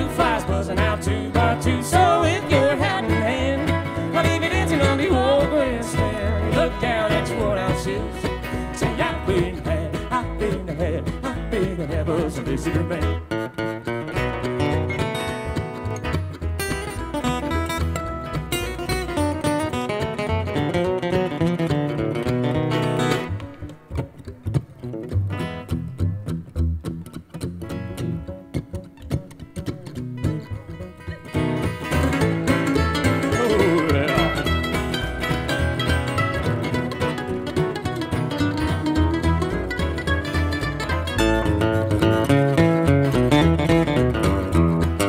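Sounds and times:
upright bass pulse: 0.0 - 13.1
bluegrass band playing: 0.0 - 45.0.

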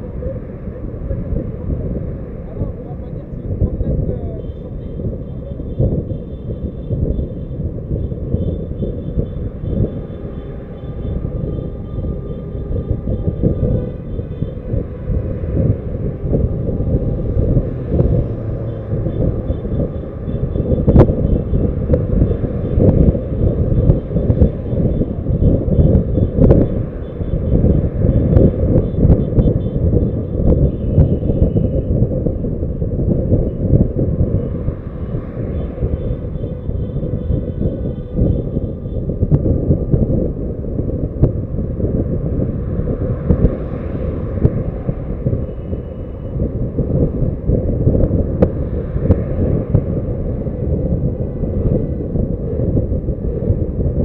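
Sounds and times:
car road noise rumble: 0.0 - 54.0
wind buffeting microphone: 0.0 - 54.0.

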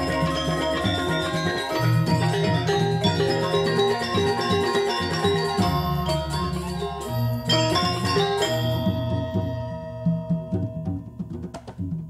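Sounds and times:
gamelan ensemble playing: 0.0 - 12.0.

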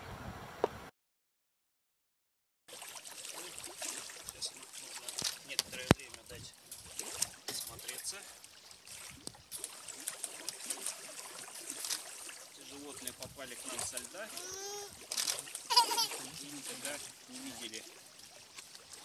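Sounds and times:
waves lapping at rocky shore: 2.7 - 19.0.

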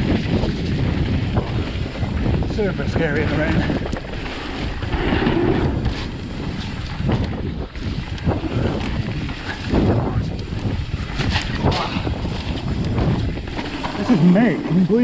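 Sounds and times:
bike knocks and rattles: 0.0 - 15.0
bike tyres rolling on trail: 0.0 - 15.0
wind buffeting microphone: 0.0 - 15.0.

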